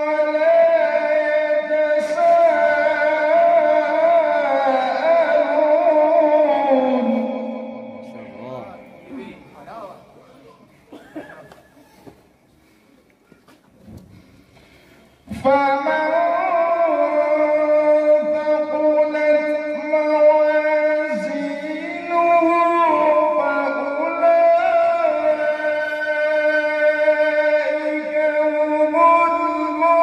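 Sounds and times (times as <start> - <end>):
man chanting recitation: 0.0 - 10.6, 15.2 - 30.0.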